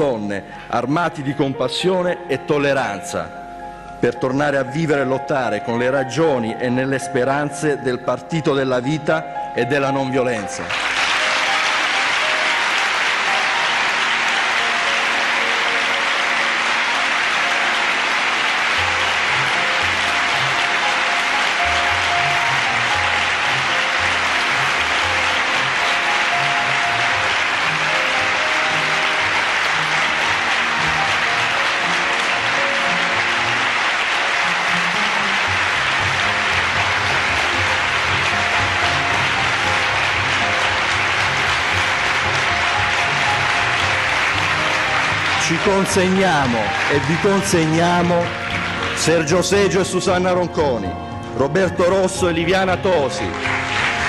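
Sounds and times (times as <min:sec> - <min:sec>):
music playing: 0:00.0 - 0:54.0
audience applauding: 0:10.6 - 0:50.8, 0:51.6 - 0:54.0.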